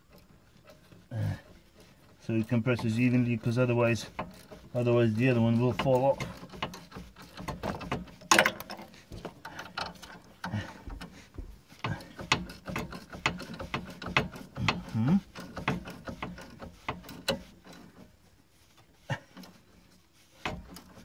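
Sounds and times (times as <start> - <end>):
spanner turning threaded rod: 0.0 - 11.2, 11.8 - 21.0.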